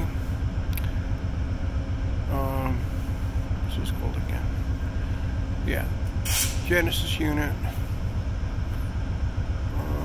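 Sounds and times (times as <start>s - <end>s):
diesel locomotives idling: 0.0s - 10.0s
faint steady hum: 0.0s - 10.0s.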